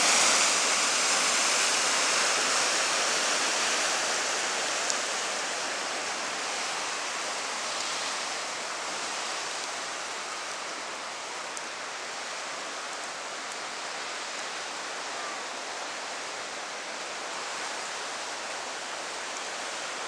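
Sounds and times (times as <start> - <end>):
turbulent river water rushing: 0.0 - 20.0.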